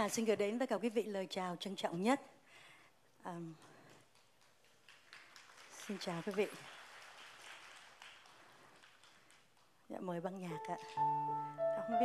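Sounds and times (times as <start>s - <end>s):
faint audience applause: 4.0s - 9.8s.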